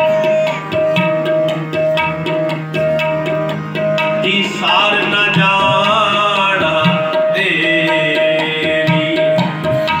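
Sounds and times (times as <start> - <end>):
harmonium melody: 0.0 - 10.0
tabla rhythm: 0.0 - 10.0.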